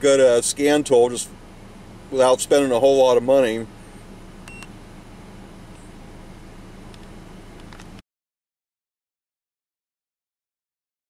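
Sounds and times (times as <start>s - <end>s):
vehicle hum: 0.0s - 8.0s
short electronic beep: 4.5s - 4.7s.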